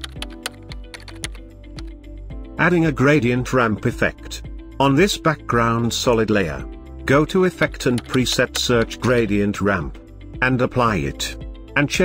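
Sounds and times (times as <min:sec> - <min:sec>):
background music: 0:00.0 - 0:12.0
keyboard key clicks: 0:07.8 - 0:09.1.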